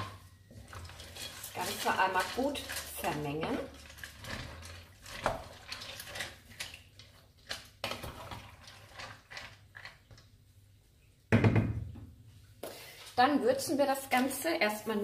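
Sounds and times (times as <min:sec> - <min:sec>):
spatula scraping and knocking pot: 0:00.0 - 0:10.2
wooden spatula stirring in pot: 0:00.0 - 0:10.6.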